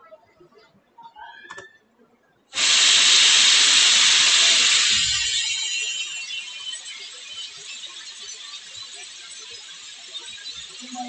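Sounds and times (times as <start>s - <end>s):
loud steady hiss: 2.6s - 11.0s.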